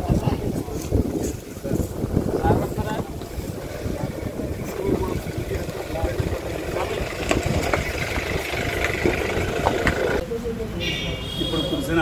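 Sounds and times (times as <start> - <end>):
wind buffeting microphone: 0.0 - 10.2
faint voices: 0.0 - 10.8.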